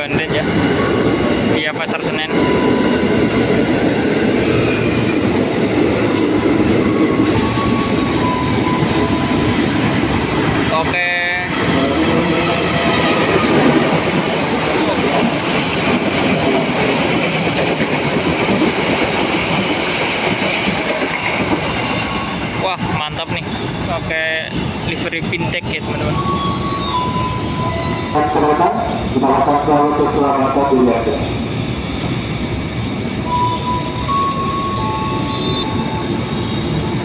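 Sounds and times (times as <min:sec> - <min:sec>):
electric train rolling in: 0:00.0 - 0:37.0
train wheel clatter: 0:00.4 - 0:26.6.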